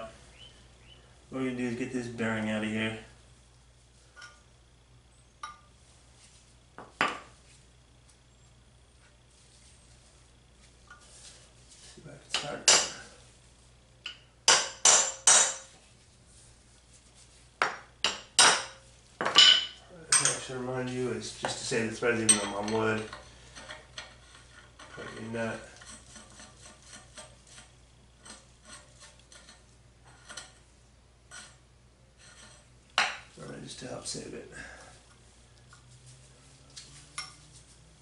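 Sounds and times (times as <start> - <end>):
hammer striking metal punch: 14.5 - 15.6.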